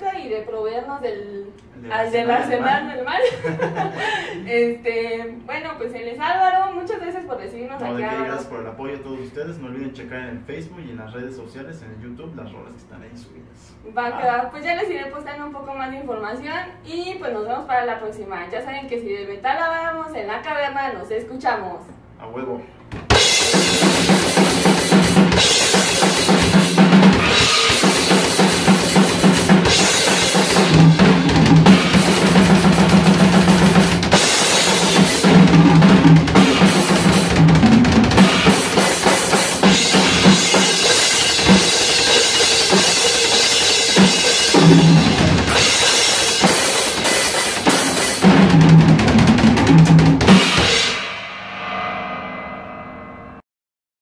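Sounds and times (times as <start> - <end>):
drum kit playing fast: 23.0 - 51.9
cymbals ringing: 23.2 - 48.2, 50.3 - 53.4.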